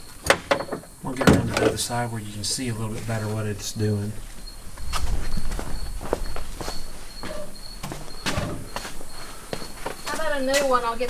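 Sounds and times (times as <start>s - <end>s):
faint high chirp: 3.7s - 11.0s
footsteps on shop floor: 4.2s - 11.0s.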